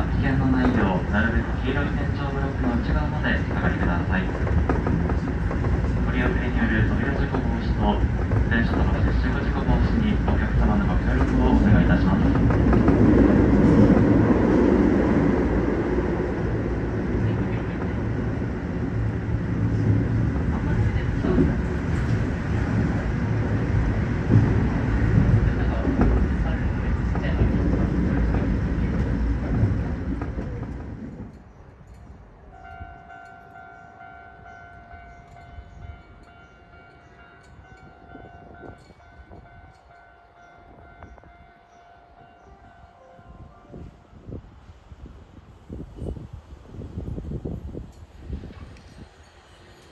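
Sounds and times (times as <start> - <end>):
train wheels rumbling on rail: 0.0 - 41.6, 42.2 - 49.9.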